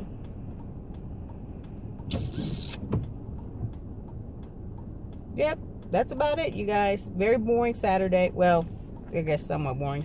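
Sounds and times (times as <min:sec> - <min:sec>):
car rumble inside cabin: 0:00.0 - 0:10.0.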